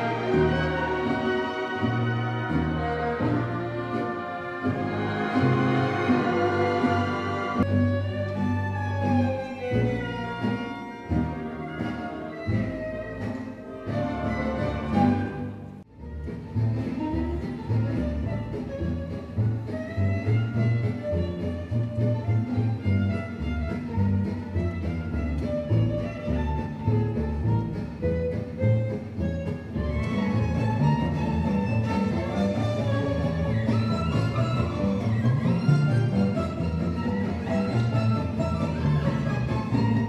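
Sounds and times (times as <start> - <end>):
acoustic guitar: 0.0 - 40.0
double bass notes: 0.0 - 40.0
orchestra playing gypsy jazz: 0.0 - 40.0
solo violin melody: 0.0 - 40.0.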